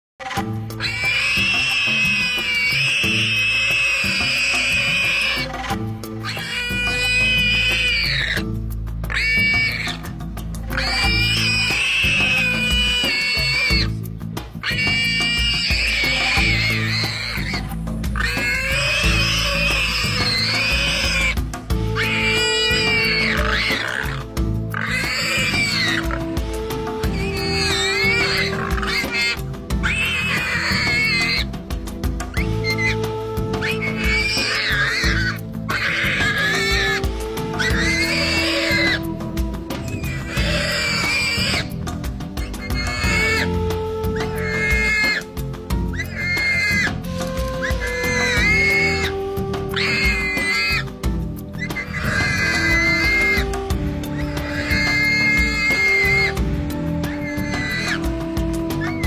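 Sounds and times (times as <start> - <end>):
warthog squealing: 0.2 - 59.0
background music with low beat: 0.4 - 59.0.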